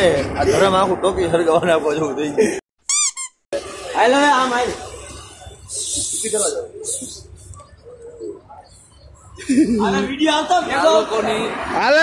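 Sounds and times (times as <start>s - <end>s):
men talking: 0.0s - 2.6s, 3.6s - 12.0s
high squeak sound effect: 2.8s - 3.6s.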